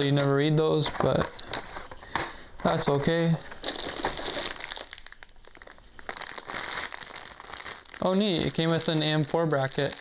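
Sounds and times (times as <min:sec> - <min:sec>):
packaging rustling and crinkling: 0:00.0 - 0:10.0.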